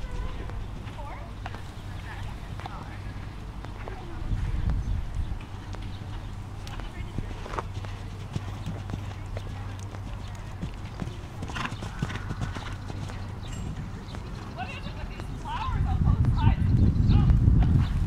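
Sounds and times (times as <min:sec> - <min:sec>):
faint voices: 0:00.0 - 0:17.4
horse hoofbeats on sand: 0:00.0 - 0:18.0.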